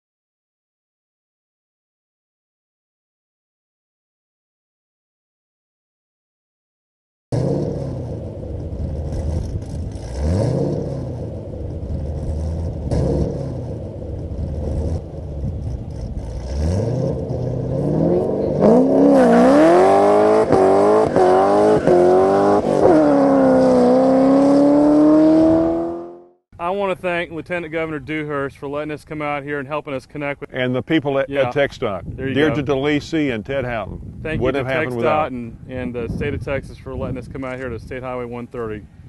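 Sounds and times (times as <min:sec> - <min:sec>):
car engine accelerating hard: 0:07.3 - 0:26.4.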